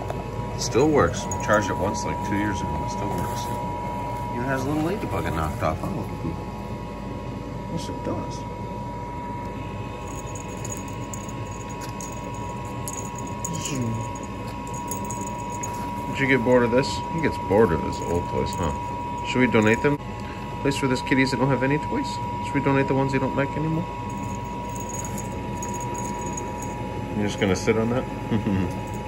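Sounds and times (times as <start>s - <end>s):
low steady hum: 0.0s - 29.0s
faint high clinks: 10.0s - 16.2s, 24.1s - 26.9s.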